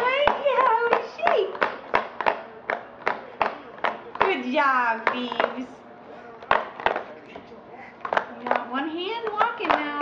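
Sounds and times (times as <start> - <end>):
sharp taps or claps: 0.0 - 4.4.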